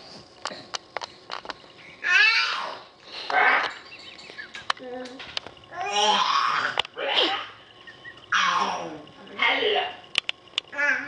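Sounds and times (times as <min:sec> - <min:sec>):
baby growling cry: 0:02.0 - 0:03.5, 0:05.7 - 0:07.5.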